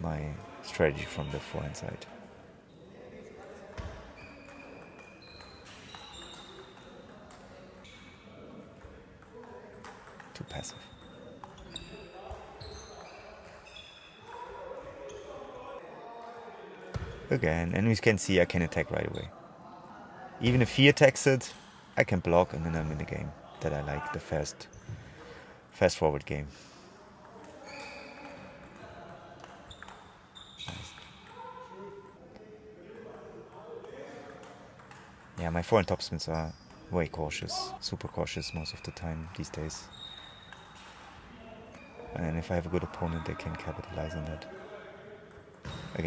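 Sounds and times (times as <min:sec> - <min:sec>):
faint voices in a hall: 0:00.0 - 0:46.0
sneakers squeaking on floor: 0:03.7 - 0:14.4, 0:27.4 - 0:31.6, 0:34.4 - 0:42.3, 0:45.5 - 0:46.0.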